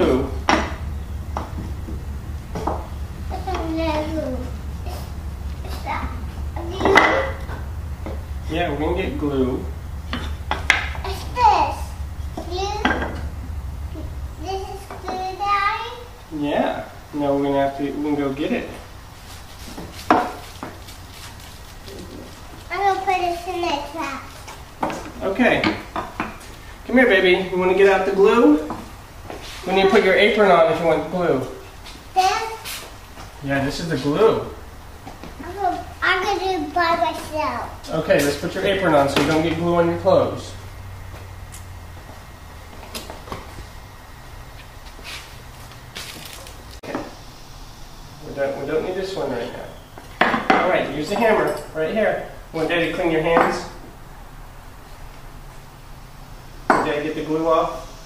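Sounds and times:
low hum: 0:00.0 - 0:32.2, 0:32.8 - 0:50.2
faint rustles: 0:00.3 - 0:17.1, 0:18.6 - 0:25.2, 0:28.5 - 0:29.9, 0:31.4 - 0:33.5, 0:40.2 - 0:47.4.

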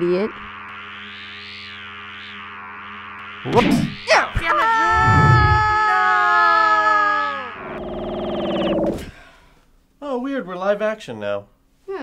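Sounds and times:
wavering synthesized sweep: 0:00.0 - 0:04.3
electronic drone: 0:00.0 - 0:05.9, 0:07.3 - 0:09.0.

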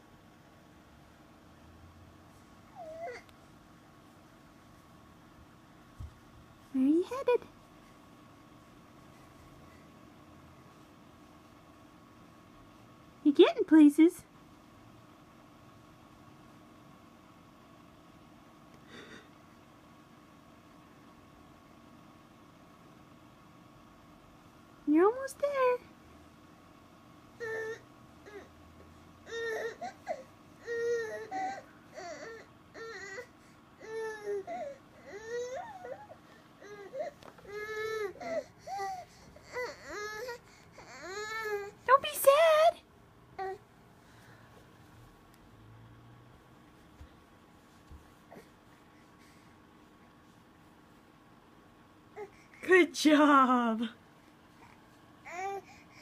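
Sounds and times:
baby whining: 0:02.7 - 0:03.3, 0:27.4 - 0:28.6, 0:29.2 - 0:41.9, 0:43.4 - 0:43.7, 0:54.6 - 0:56.0.

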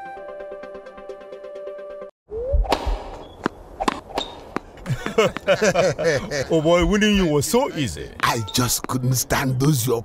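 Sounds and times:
tennis ball hit by racquet: 0:02.7 - 0:04.7.

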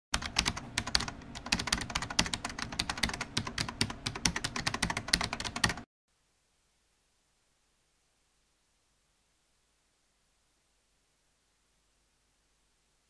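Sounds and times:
rapid keyboard typing: 0:00.2 - 0:05.9.

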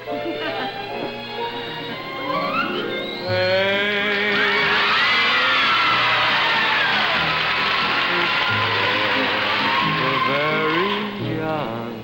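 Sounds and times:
studio band music: 0:00.0 - 0:12.0.

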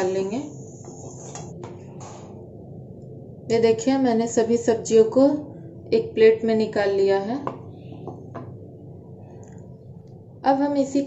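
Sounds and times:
low steady hum: 0:00.0 - 0:11.0
metal spatula scraping a pan: 0:00.8 - 0:01.5.

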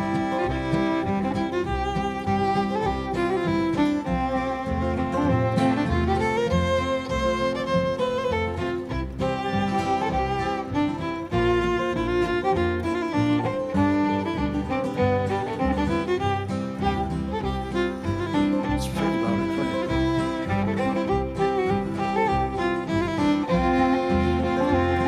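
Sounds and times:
fiddle melody: 0:00.0 - 0:25.0
string band rhythm: 0:00.0 - 0:25.0.

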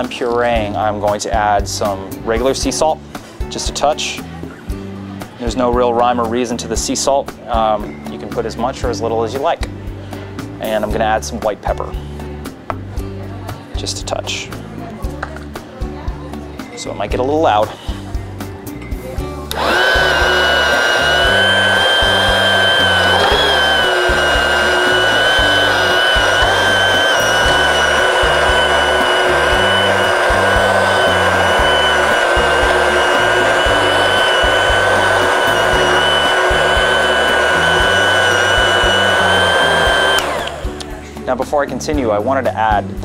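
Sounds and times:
stick blender whining: 0:19.5 - 0:41.0.

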